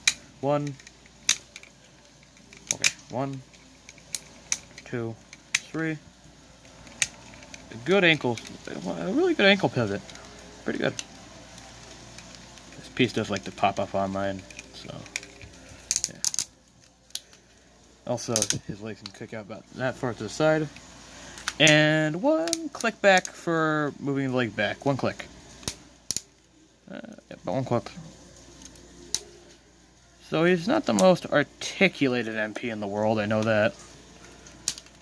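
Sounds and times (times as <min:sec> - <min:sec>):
plastic parts clicking: 0:00.0 - 0:05.7, 0:06.6 - 0:08.7, 0:14.4 - 0:17.4, 0:18.3 - 0:19.2, 0:34.4 - 0:35.0.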